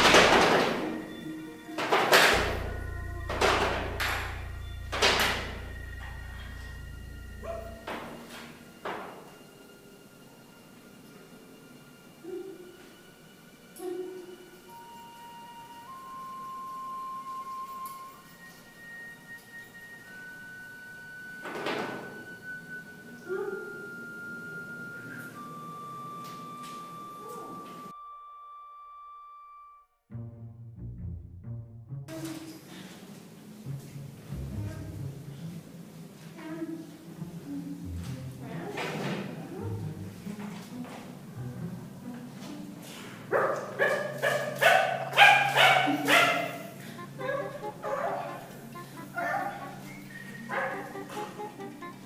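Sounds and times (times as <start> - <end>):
low steady hum: 2.2 - 8.8
high whistle-like tone: 2.6 - 8.4, 14.6 - 29.9, 48.7 - 51.1
small dog yapping: 43.4 - 48.4, 50.5 - 50.8.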